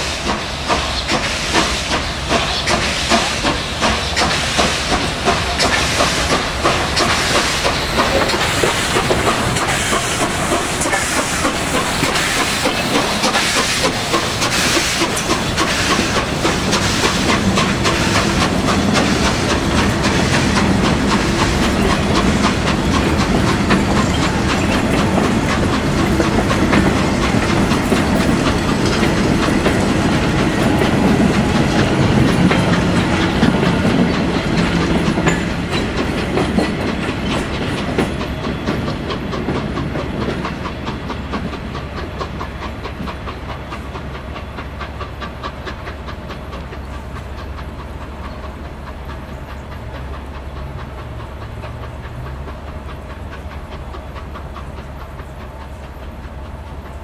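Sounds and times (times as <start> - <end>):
hissing steam: 0.0 - 57.0
train wheels clattering over rails: 0.0 - 57.0.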